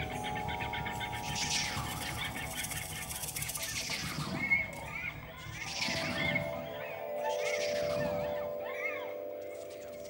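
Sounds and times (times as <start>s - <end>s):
vibraphone notes ringing: 0.0s - 3.6s, 6.0s - 10.0s.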